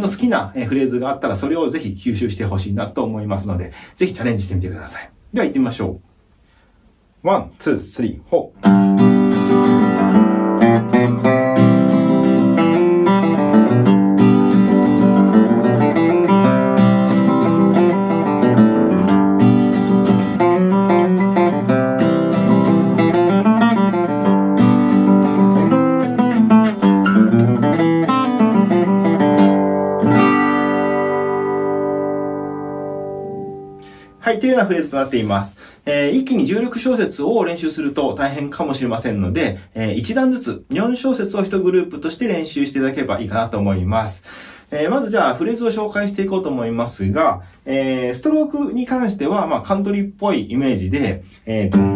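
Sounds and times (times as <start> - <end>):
acoustic guitar playing country: 8.6 - 34.2, 51.7 - 51.9.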